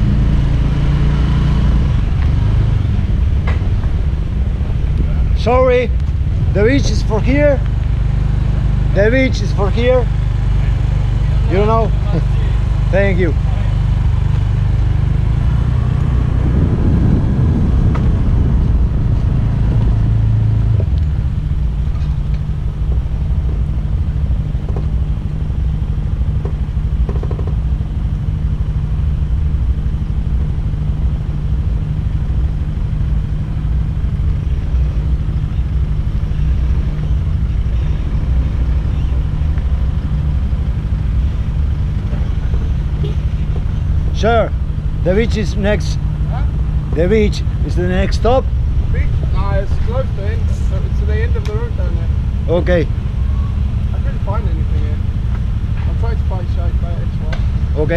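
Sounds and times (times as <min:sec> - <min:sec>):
motor scooter engine: 0:00.0 - 0:57.9.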